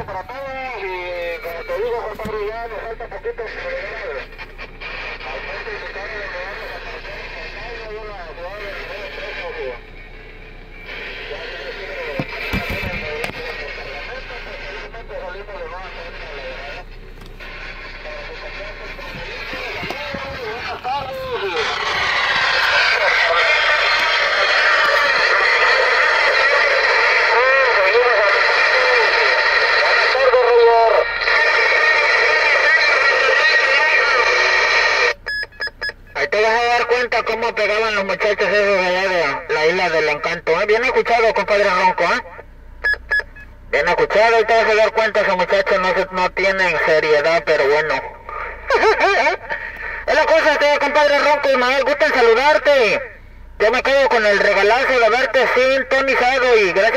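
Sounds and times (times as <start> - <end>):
garbled radio voices: 0.0 - 56.9
radio static: 0.0 - 56.9
wavering radio tones: 0.0 - 56.9.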